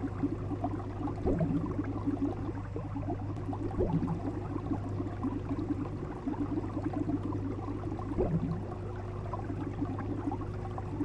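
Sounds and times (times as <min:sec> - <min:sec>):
aquarium bubbles gurgling: 0:00.0 - 0:11.0
low hum: 0:00.0 - 0:11.0.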